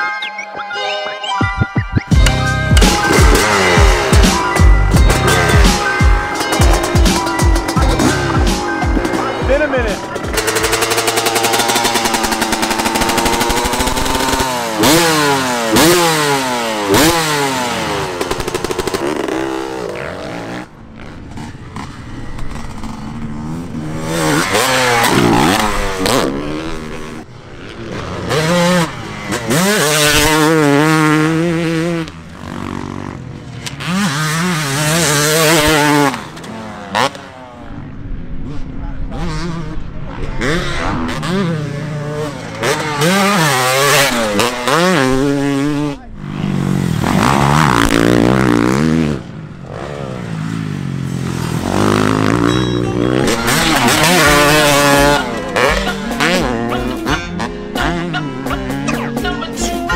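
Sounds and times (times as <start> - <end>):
dirt bike engine revving: 2.1 - 59.9.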